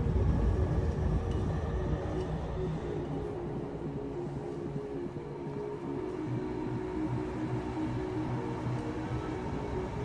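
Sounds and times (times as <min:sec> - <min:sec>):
music with deep rumbling bass: 0:00.0 - 0:10.0.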